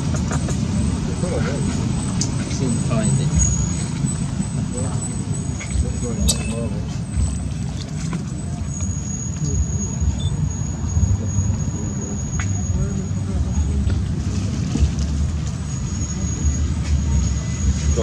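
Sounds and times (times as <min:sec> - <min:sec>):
low outdoor rumble: 0:00.0 - 0:18.0.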